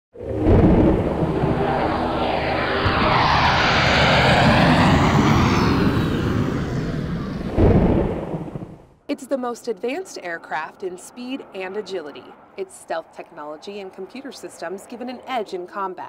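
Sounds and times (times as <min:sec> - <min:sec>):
jet aircraft roar: 0:00.2 - 0:08.8, 0:09.9 - 0:15.7.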